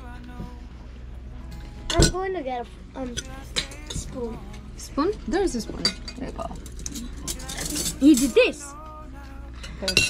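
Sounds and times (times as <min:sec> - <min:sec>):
spoons clinking against plates: 0:03.1 - 0:04.6, 0:05.7 - 0:08.6, 0:09.5 - 0:10.0.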